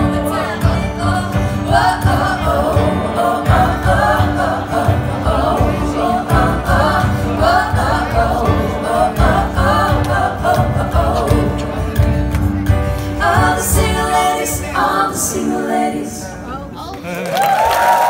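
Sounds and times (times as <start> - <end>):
women singing in harmony: 0.0 - 12.3, 12.9 - 16.5
band playing with low beat: 0.0 - 14.8.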